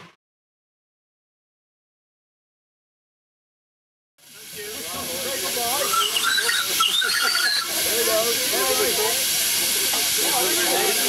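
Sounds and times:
steam locomotive hissing: 4.2 - 11.0.

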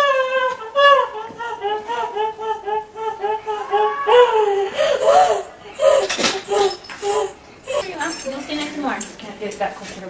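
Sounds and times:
woman's high-pitched wordless cries: 0.0 - 8.0.

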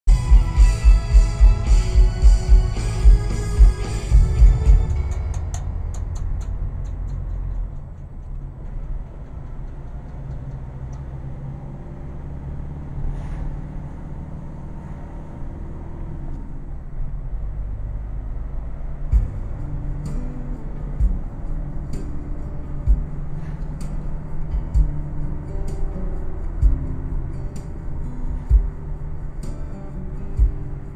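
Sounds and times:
music playing: 0.0 - 7.8, 19.1 - 30.9
car engine and road rumble: 0.0 - 30.9
low thumps: 0.1 - 11.0, 19.1 - 20.2, 20.8 - 22.0, 22.8 - 25.4, 26.5 - 27.2, 28.5 - 29.0.

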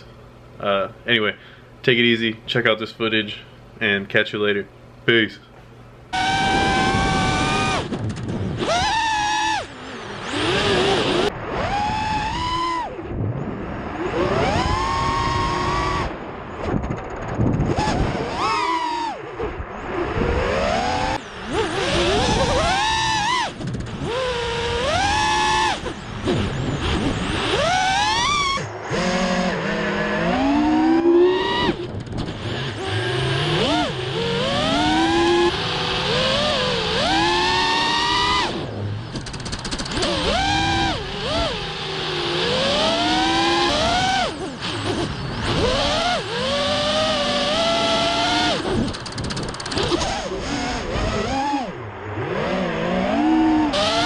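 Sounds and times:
quadcopter motors whining: 6.1 - 54.0.

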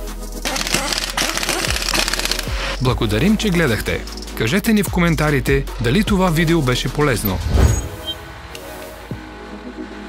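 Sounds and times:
background music: 0.0 - 10.0
impact wrench rattling: 0.4 - 2.8.

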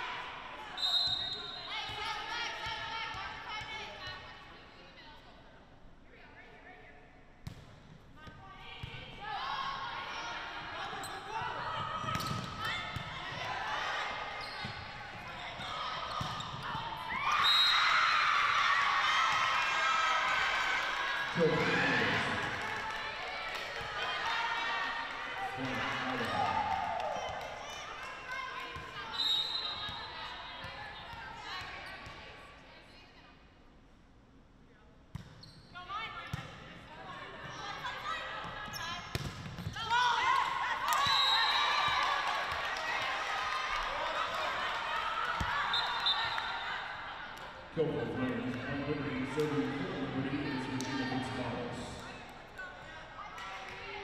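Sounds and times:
volleyball hit and bouncing: 39.1 - 39.9.

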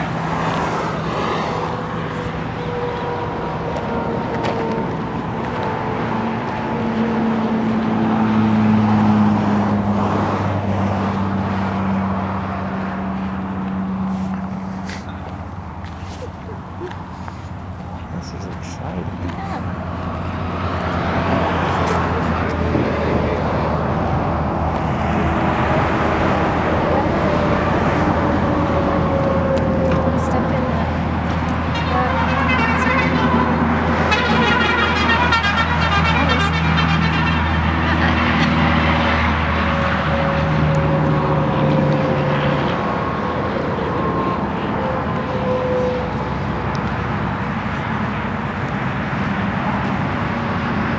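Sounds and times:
highway traffic passing: 0.0 - 50.9.

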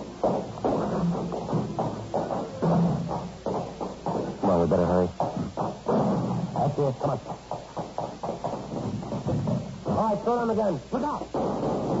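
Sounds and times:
footsteps hurrying on hard floor: 0.0 - 12.0.

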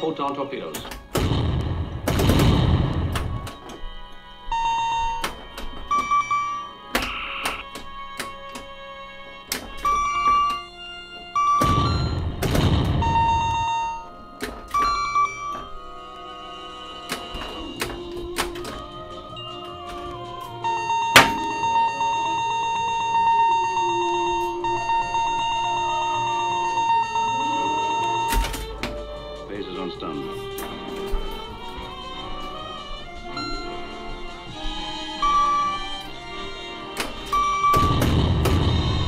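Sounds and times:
pinball background music: 0.0 - 39.0
explosion sound effect: 1.2 - 3.5, 11.6 - 13.7, 37.8 - 39.0.

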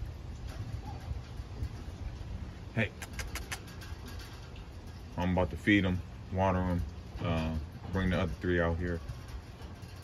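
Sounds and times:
low steady rumble: 0.0 - 10.0
claws clicking on wire mesh: 0.1 - 5.4.

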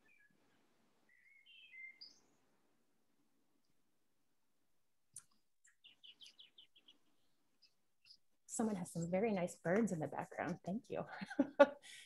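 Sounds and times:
faint birds chirping: 0.0 - 3.8, 5.1 - 12.0.

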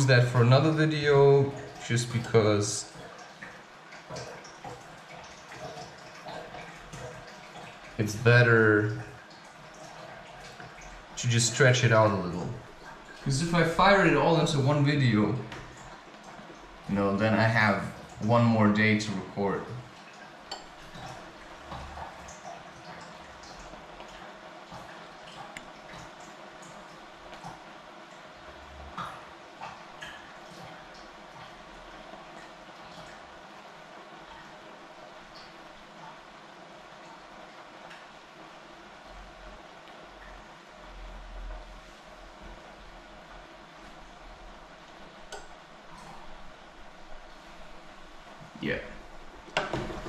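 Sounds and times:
tap water running: 0.0 - 50.0.

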